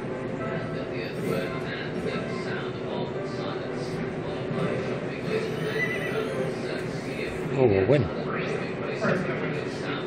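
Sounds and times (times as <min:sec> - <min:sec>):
horse whinnying through speaker: 0:05.3 - 0:06.6.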